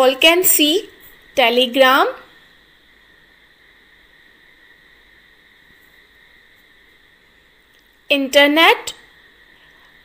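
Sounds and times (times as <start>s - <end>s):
steady high-pitched whine: 0.0s - 10.0s.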